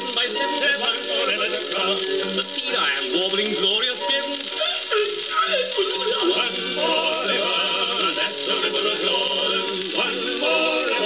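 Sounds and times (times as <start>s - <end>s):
old gramophone record music: 0.0s - 11.0s.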